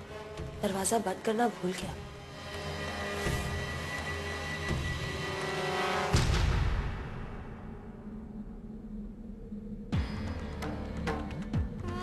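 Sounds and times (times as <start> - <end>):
low rumbling drone: 2.0 - 12.0.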